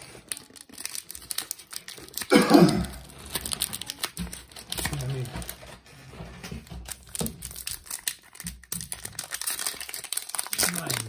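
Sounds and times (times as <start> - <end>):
plastic blister pack crinkling: 0.0 - 11.0
sharp plastic crackles: 0.0 - 11.0.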